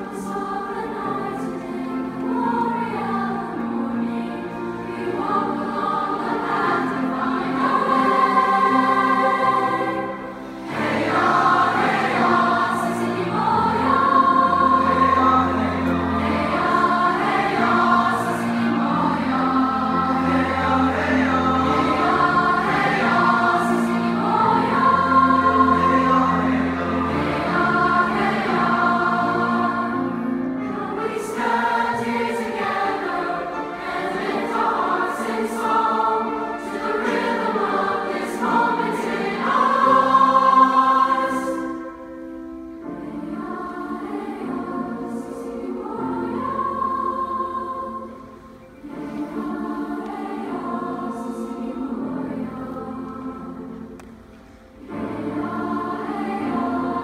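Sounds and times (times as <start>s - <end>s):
mixed choir singing: 0.0s - 57.0s
piano accompaniment: 0.0s - 57.0s.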